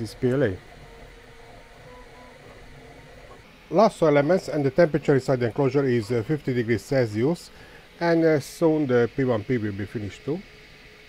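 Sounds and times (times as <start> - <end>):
steady whir of fans: 0.0 - 11.0
stepper motor tones: 0.0 - 11.0.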